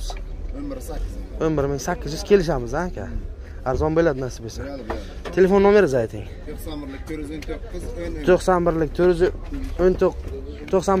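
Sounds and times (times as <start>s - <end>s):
man speaking: 0.0s - 11.0s.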